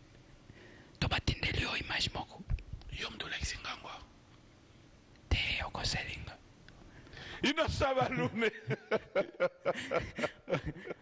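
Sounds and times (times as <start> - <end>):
person whispering close to microphone: 1.0 - 4.1, 5.3 - 6.4.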